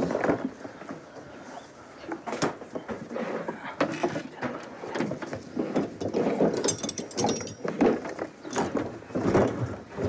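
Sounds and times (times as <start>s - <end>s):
rummaging through wooden drawers: 2.2s - 10.0s.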